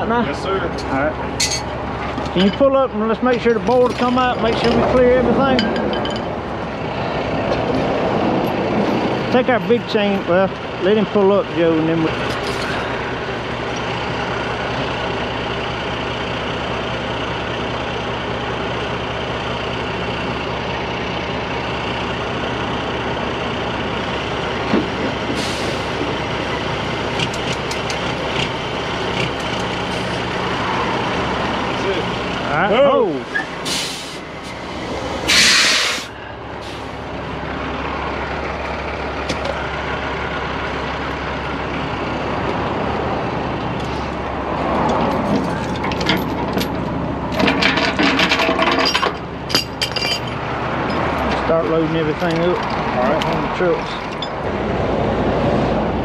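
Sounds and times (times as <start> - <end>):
truck diesel engine idling: 0.0 - 56.0
air brakes hissing: 25.3 - 26.0, 33.2 - 37.0.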